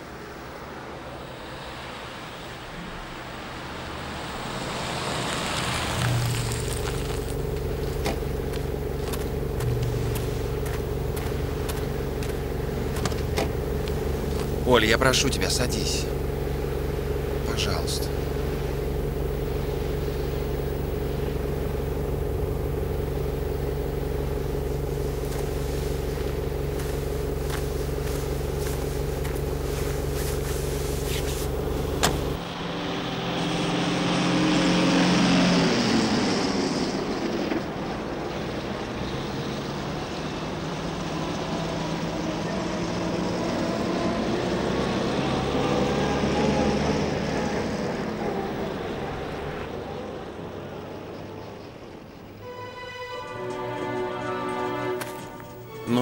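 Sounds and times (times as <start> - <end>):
car engine: 0.0 - 56.0.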